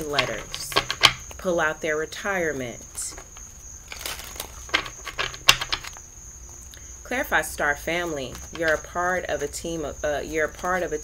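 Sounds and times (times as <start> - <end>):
cards being shuffled: 3.1 - 6.0.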